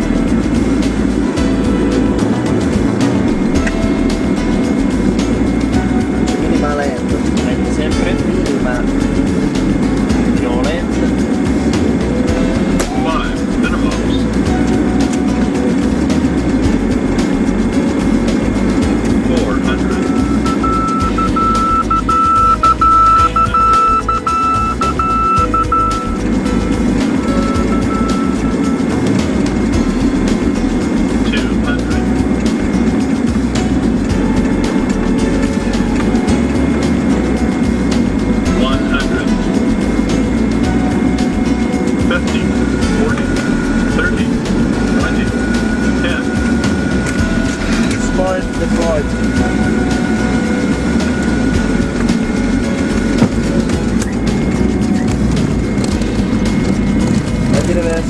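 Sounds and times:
airliner engine and airflow drone: 0:00.0 - 0:58.0
high steady tone: 0:00.0 - 0:58.0.

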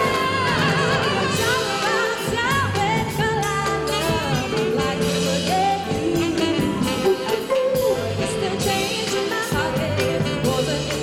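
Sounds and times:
live band music with singing: 0:00.0 - 0:11.0.

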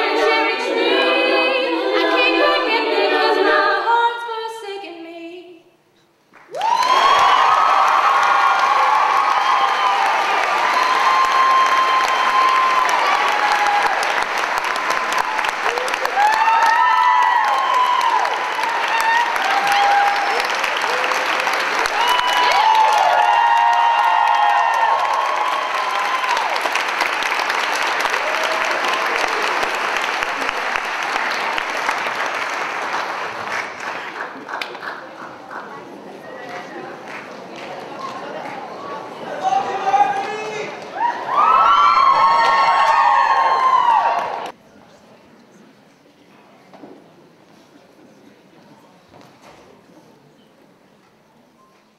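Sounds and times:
girls' choir singing a cappella: 0:00.0 - 0:05.6
audience applause: 0:06.4 - 0:44.6
whoops and cheers: 0:06.5 - 0:14.2, 0:14.9 - 0:26.8, 0:28.0 - 0:29.7, 0:39.5 - 0:44.6.

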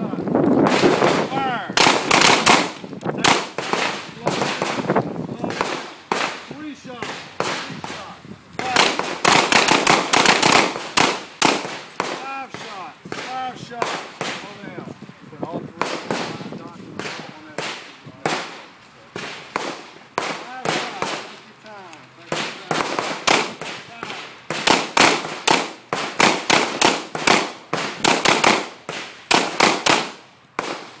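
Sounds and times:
handgun shots: 0:01.8 - 0:04.9, 0:08.6 - 0:14.4, 0:22.3 - 0:30.9.

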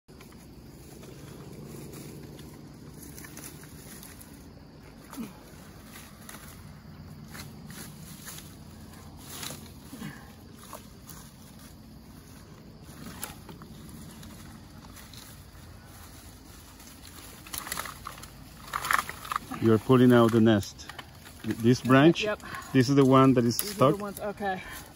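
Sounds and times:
steady low rumble: 0:00.1 - 0:20.0
sticks and branches rustling: 0:00.1 - 0:24.9
sticks cracking: 0:16.7 - 0:19.6.

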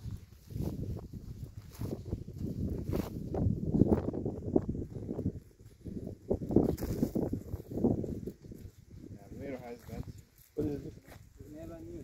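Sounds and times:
footsteps on dry grass: 0:00.0 - 0:12.0.

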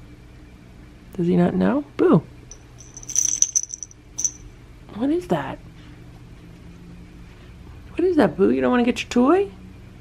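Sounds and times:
cat toy bell jingling: 0:02.5 - 0:04.4.

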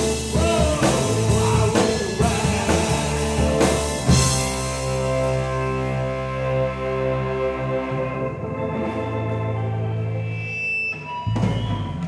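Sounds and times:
rock band sustained chord: 0:00.0 - 0:10.5.

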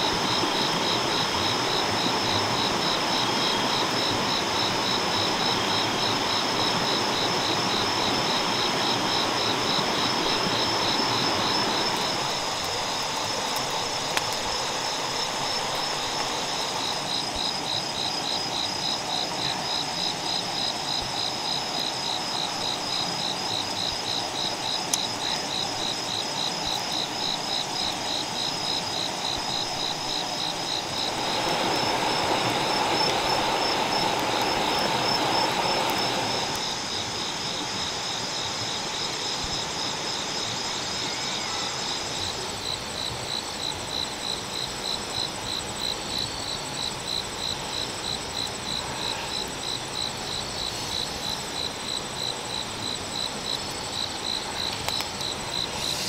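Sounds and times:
insects trilling: 0:00.0 - 0:56.0
noisy hiss: 0:00.0 - 0:56.0.

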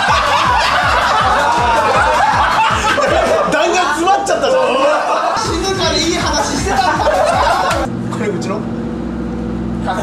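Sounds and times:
music with bass-drum beat: 0:00.0 - 0:03.5, 0:05.4 - 0:07.9
men laughing loudly: 0:00.0 - 0:07.9.

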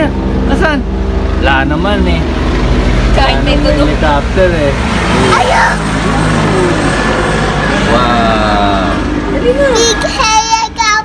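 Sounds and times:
helicopter rotor drone: 0:00.0 - 0:11.0.

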